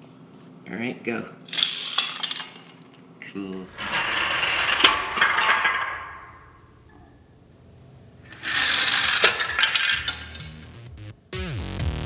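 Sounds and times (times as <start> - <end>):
toy car rolling on wooden floor: 3.8 - 6.2, 8.3 - 10.5
plastic pieces skittering: 8.4 - 10.6.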